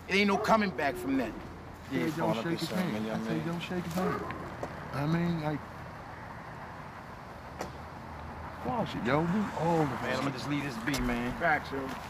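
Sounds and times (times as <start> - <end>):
man speaking: 0.0 - 4.3, 8.6 - 12.0
outdoor background noise: 0.0 - 12.0.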